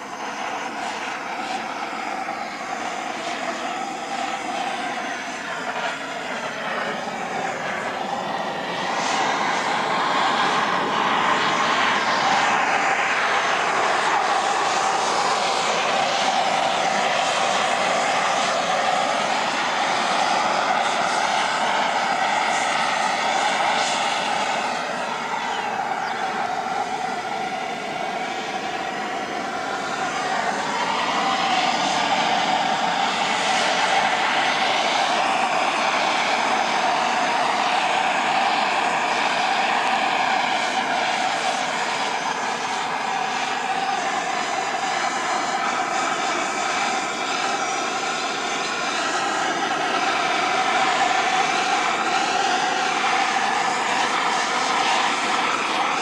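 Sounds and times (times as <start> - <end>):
propane torch roaring: 0.0 - 56.0.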